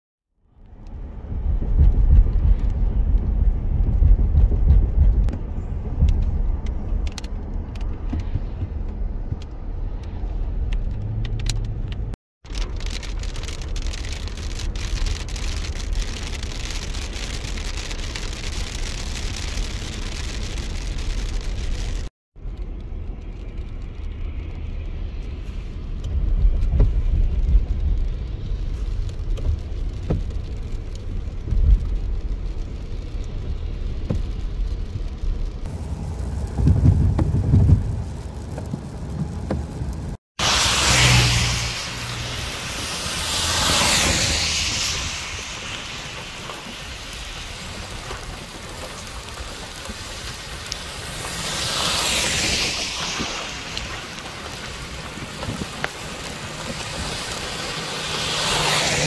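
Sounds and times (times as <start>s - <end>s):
car driving on wet road: 0.6s - 59.0s
rain and wind hiss: 5.5s - 59.0s.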